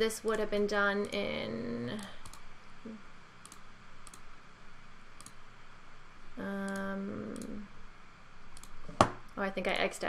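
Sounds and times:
faint room noise: 0.0s - 10.0s
computer mouse clicking: 1.9s - 2.5s, 3.4s - 4.3s, 5.2s - 5.4s, 8.5s - 9.0s.

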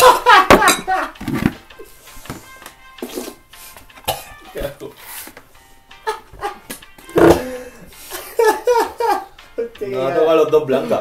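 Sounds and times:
men gagging and groaning: 0.0s - 1.9s, 6.0s - 9.4s.

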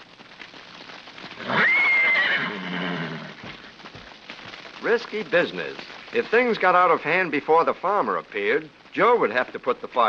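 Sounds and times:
horse whinnying: 1.4s - 3.7s.

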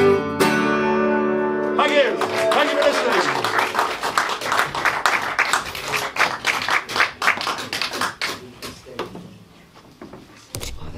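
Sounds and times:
audience applauding: 1.8s - 8.6s.

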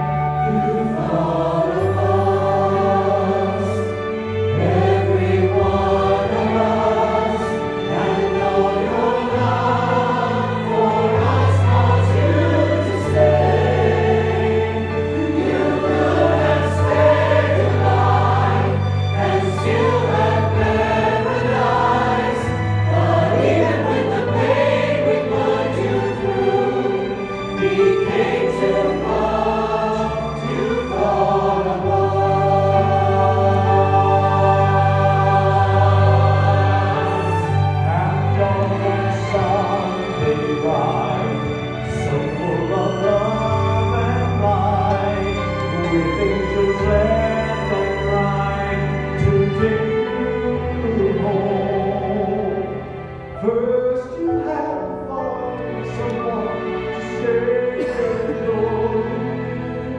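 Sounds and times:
choir singing gospel: 0.0s - 59.9s.

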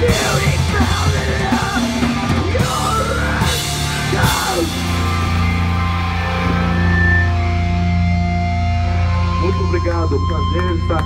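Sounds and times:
droning electric guitar and bass: 0.0s - 11.0s.

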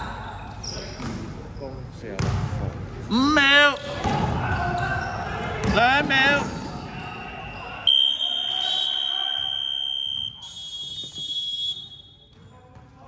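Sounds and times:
scoreboard buzzer tone: 7.9s - 10.3s.

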